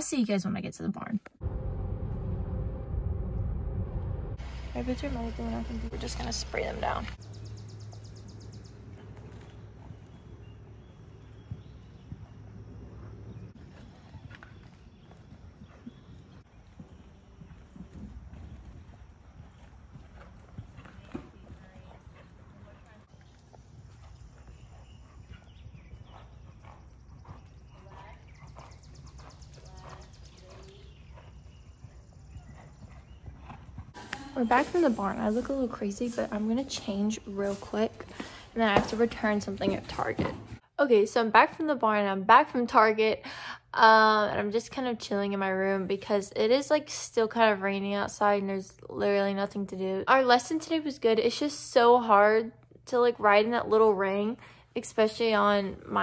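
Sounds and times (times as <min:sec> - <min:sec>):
horse hooves thudding on dirt: 0:03.4 - 0:40.7.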